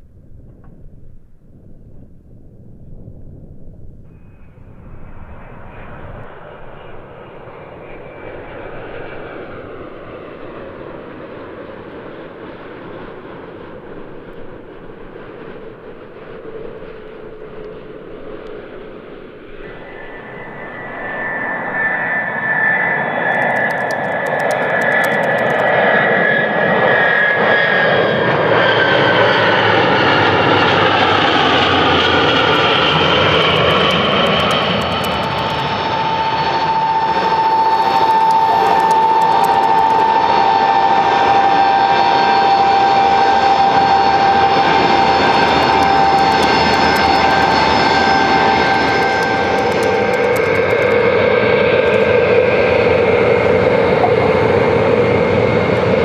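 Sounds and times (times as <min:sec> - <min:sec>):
jet aircraft engines: 0:00.0 - 0:56.0.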